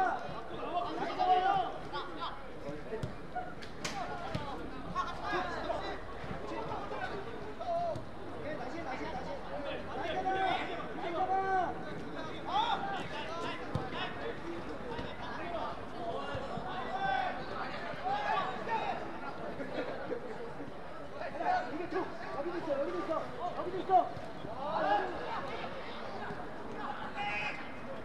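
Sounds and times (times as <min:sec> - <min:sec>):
players shouting calls: 0:00.0 - 0:19.2, 0:21.3 - 0:28.0
background murmur: 0:00.0 - 0:28.0.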